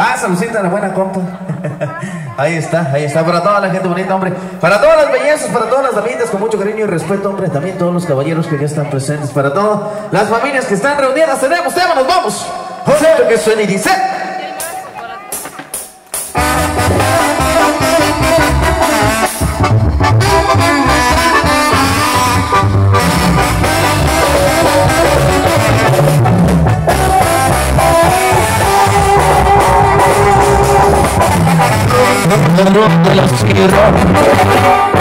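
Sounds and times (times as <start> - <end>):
live band playing: 0.0 - 35.0
horn melody: 16.3 - 35.0.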